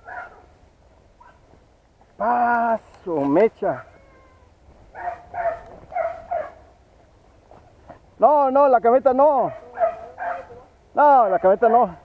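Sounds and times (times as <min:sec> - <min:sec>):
beagles yelping: 0:03.6 - 0:06.7, 0:09.4 - 0:10.7.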